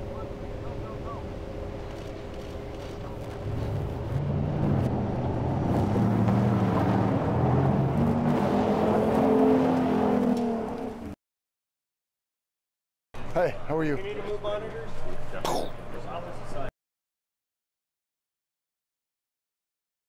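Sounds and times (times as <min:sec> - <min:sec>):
sports car engine revving: 0:03.2 - 0:11.1.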